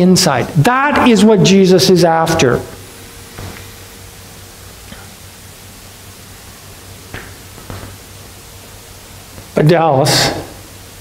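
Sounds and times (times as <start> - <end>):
sound system hiss: 0.0 - 11.0.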